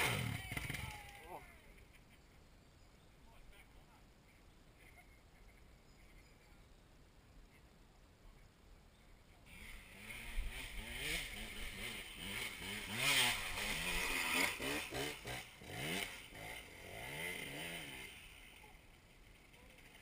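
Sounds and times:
dirt bike engines revving: 0.0 - 2.0, 9.5 - 20.0.

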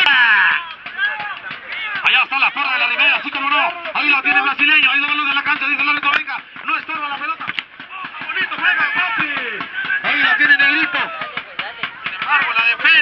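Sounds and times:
men calling out and talking: 0.0 - 13.0.

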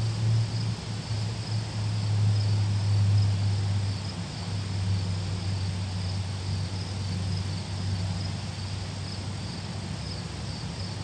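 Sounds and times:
crickets chirping: 0.0 - 11.0
low steady hum: 0.0 - 11.0.

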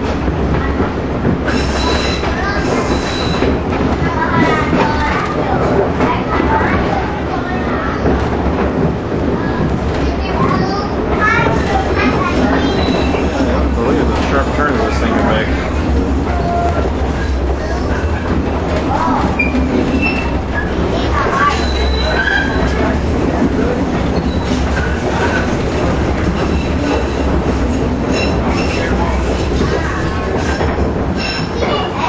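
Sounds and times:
trolley car rolling rumble: 0.0 - 32.0
wheel squeals: 1.5 - 3.6, 12.4 - 13.6, 16.3 - 23.0, 24.1 - 27.3, 28.0 - 31.9.

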